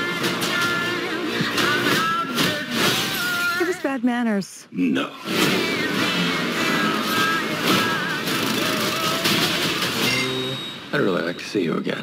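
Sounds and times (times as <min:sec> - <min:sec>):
car engine revving: 0:05.2 - 0:10.2
trailer music: 0:05.2 - 0:10.9.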